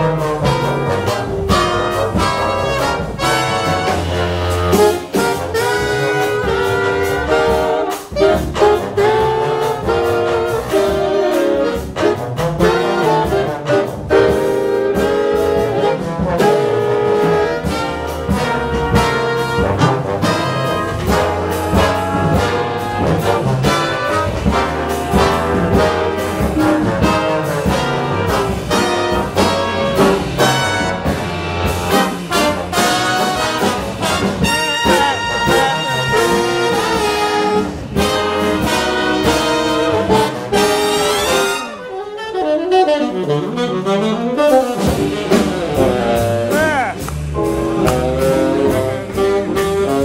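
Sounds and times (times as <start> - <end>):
tenor saxophone: 0.0 - 31.2, 31.9 - 50.0
jazz big band playing: 0.0 - 50.0.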